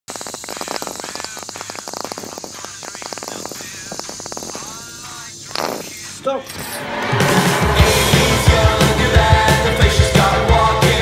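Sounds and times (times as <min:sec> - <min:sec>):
sauce squirting from squeeze bottle: 0:00.1 - 0:06.1.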